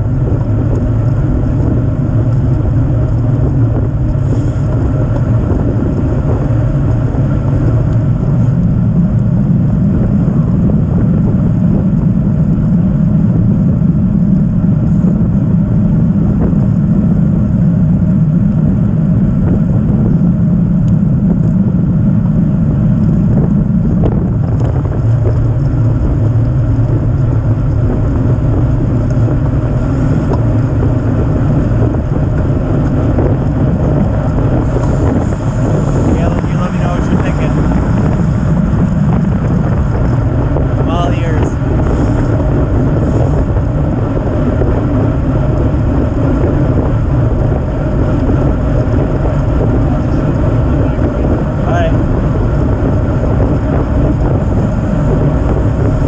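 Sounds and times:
bike tyres rumbling on asphalt: 0.0s - 56.0s
wind buffeting microphone: 0.0s - 56.0s.

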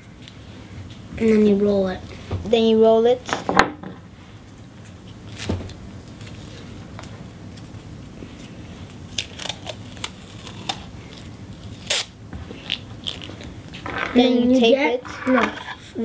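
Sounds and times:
masking tape ripping off roll: 9.1s - 14.3s.

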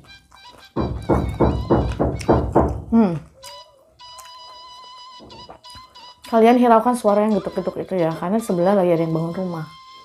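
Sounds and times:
knocks: 0.8s - 3.0s.

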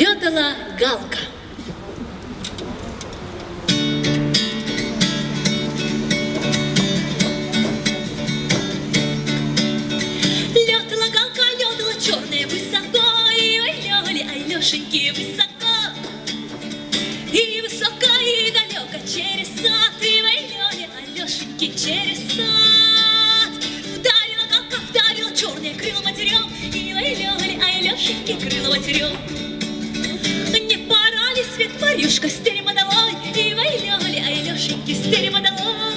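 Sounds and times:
strummed acoustic guitar: 3.0s - 35.9s
woman singing folk song: 9.9s - 35.9s.

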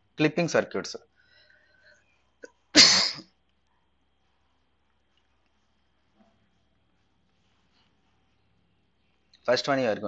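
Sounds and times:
person sneezing: 2.4s - 3.3s.

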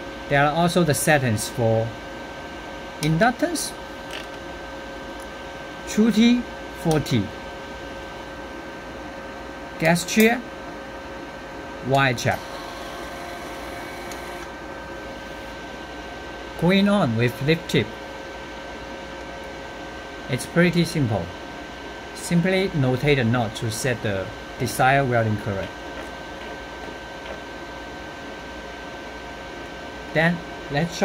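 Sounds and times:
welder fan hum: 0.0s - 31.0s
welder high whine: 11.8s - 17.9s
welder wire-feed motor whirring: 12.2s - 14.6s.

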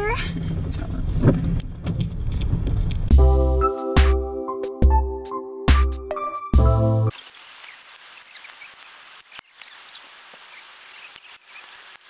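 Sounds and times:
engine and tyre rumble: 0.0s - 3.1s.

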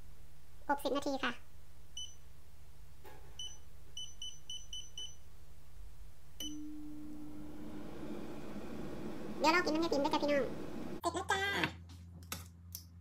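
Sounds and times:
touch-panel beeps: 3.4s - 5.2s, 6.4s - 7.4s
fan humming: 6.0s - 11.0s.

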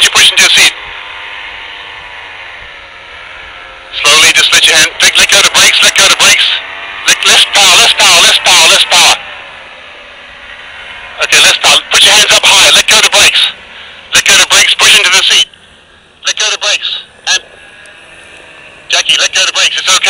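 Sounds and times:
distant paramotor engine droning: 0.0s - 20.0s.

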